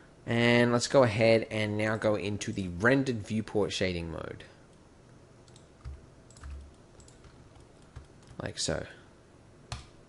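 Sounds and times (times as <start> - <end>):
keyboard and mouse clicks: 5.4 - 8.4, 9.7 - 10.0.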